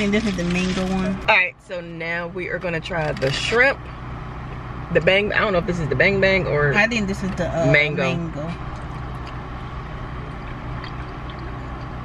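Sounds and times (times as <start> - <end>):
car cabin hum and hiss: 0.0 - 12.0.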